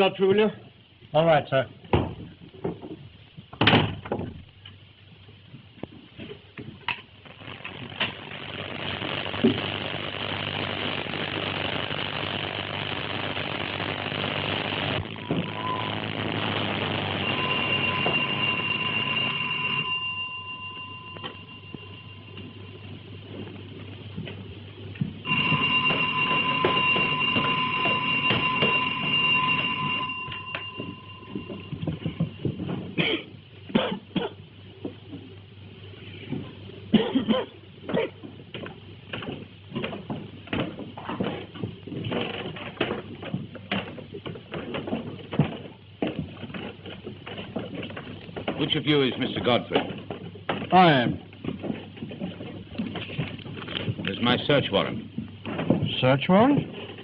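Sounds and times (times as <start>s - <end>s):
long steady high tones: 7.3s - 23.9s, 25.2s - 32.8s.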